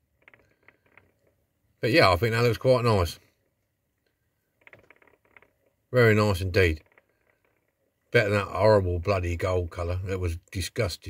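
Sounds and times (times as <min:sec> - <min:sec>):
man speaking: 0:01.8 - 0:03.2, 0:06.0 - 0:06.8, 0:08.2 - 0:11.0.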